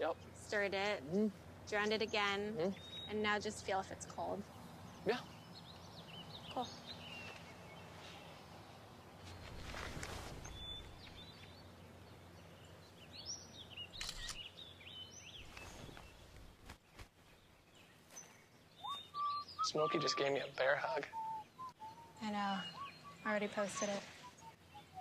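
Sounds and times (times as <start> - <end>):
bird chirps and calls: 1.7 - 8.4, 17.6 - 25.0.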